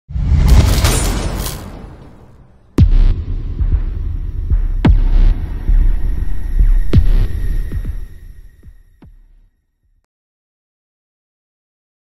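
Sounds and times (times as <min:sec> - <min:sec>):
heavy impact hits: 0:00.2 - 0:08.8
deep throbbing bass rumble: 0:02.8 - 0:09.4.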